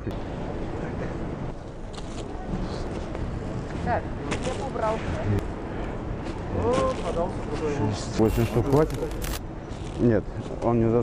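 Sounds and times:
supermarket background noise: 0:01.6 - 0:11.0.

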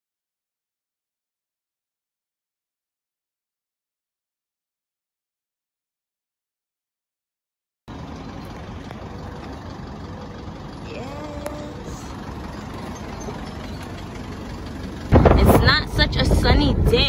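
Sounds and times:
car road noise: 0:07.9 - 0:17.0
person speaking: 0:10.9 - 0:12.2
wind buffeting on microphone: 0:15.0 - 0:17.0.

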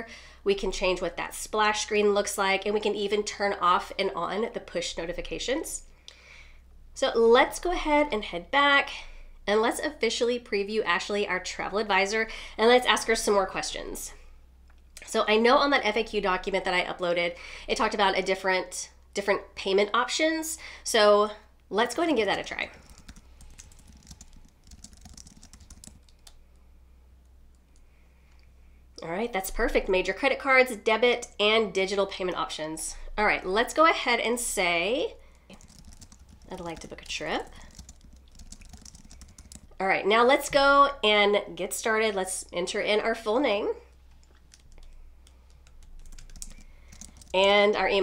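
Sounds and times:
low steady hum: 0:00.0 - 0:48.0
computer keyboard typing: 0:21.9 - 0:26.4, 0:35.5 - 0:39.8, 0:44.1 - 0:47.4.

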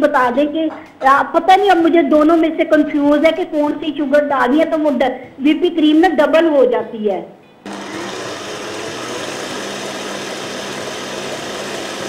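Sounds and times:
stand mixer whisking in metal bowl: 0:07.7 - 0:12.0.

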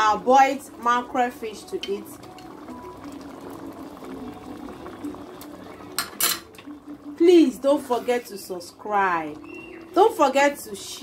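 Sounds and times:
pot bubbling: 0:00.0 - 0:11.0.

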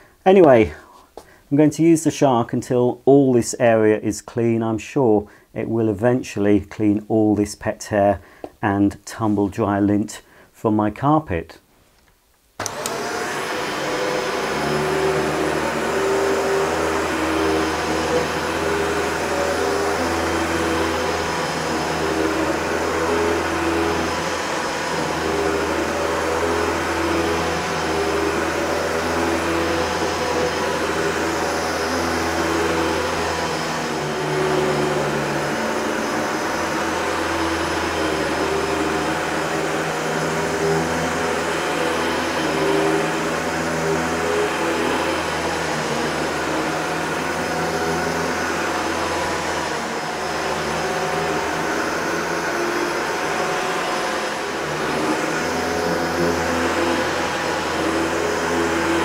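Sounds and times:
vacuum cleaner running: 0:12.6 - 0:59.0.

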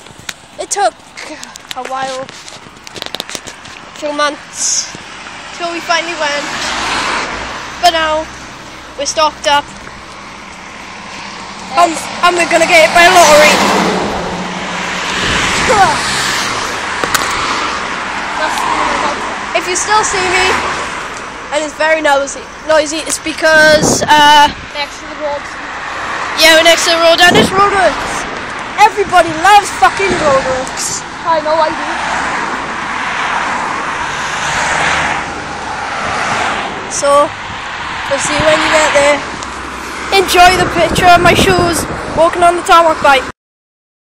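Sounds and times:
roadworks noise: 0:00.0 - 0:43.3
vehicle passing: 0:00.0 - 0:43.3
road traffic: 0:00.0 - 0:43.4.

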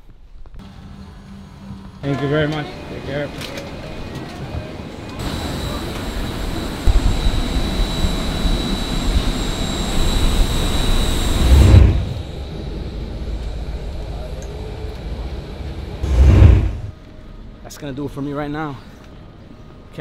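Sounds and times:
jet engine roar with whine: 0:00.6 - 0:17.1
quiet steady rumble: 0:11.4 - 0:17.6.

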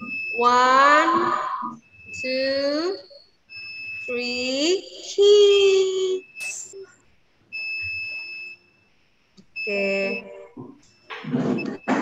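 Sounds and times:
high-pitched electronic beep: 0:00.0 - 0:06.9.

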